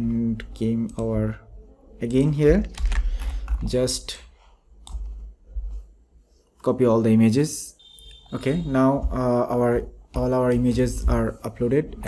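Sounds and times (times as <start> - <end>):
soft low thumps: 8.6 - 11.4.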